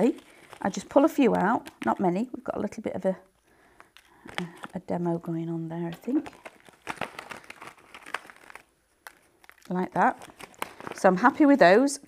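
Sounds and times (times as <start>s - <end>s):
paper pieces rustling: 0.0s - 2.0s, 5.8s - 11.5s
plastic bag crinkling: 0.0s - 11.9s.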